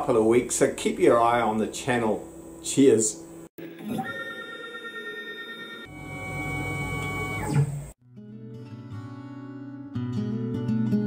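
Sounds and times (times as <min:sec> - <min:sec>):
milling machine motors whining: 0:03.6 - 0:08.0.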